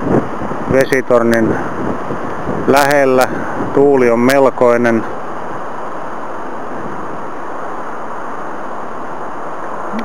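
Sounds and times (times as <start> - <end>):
strong wind: 0.0 - 10.0.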